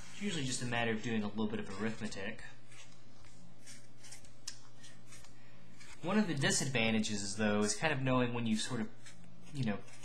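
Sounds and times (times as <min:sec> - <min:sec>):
marker squeaking on paper: 0:00.0 - 0:03.0, 0:08.5 - 0:10.0.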